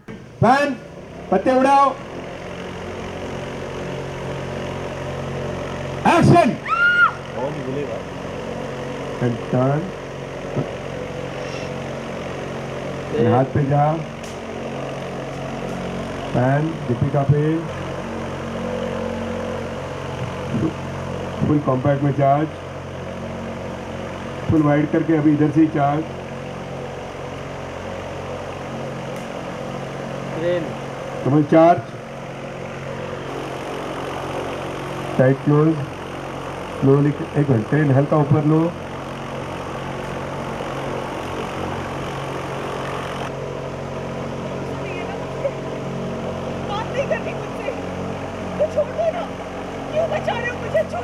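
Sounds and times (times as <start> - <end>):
large fan droning hum: 0.0 - 51.0.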